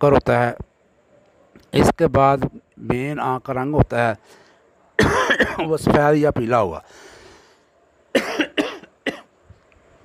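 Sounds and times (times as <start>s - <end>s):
man coughing: 5.0s - 5.8s, 8.1s - 9.3s.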